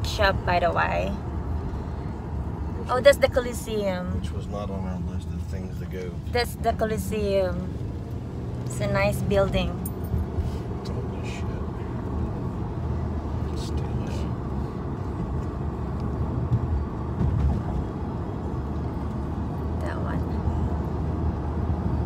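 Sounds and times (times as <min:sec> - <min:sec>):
car engine hum: 0:00.0 - 0:22.0.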